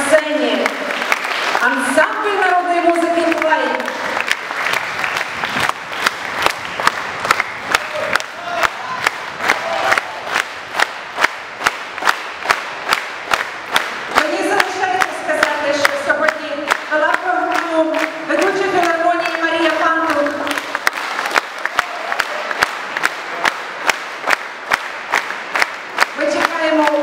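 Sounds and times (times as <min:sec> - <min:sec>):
rhythmic clapping: 0:00.0 - 0:27.0
audience applauding: 0:00.5 - 0:15.6, 0:16.7 - 0:27.0.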